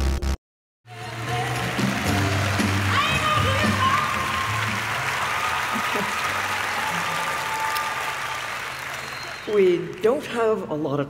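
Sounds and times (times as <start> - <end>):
walk-on music: 0.9 - 5.1
audience applauding: 0.9 - 10.6.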